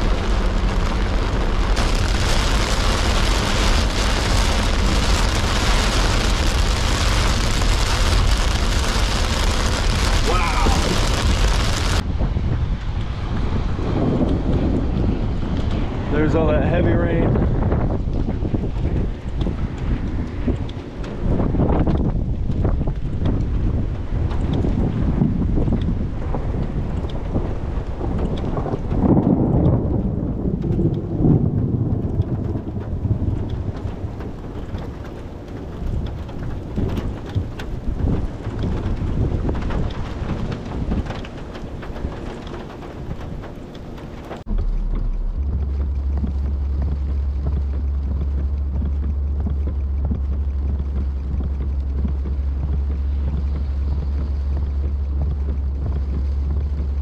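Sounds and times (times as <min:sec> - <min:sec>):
steady low hum: 0:00.0 - 0:57.0
wind buffeting microphone: 0:00.0 - 0:57.0.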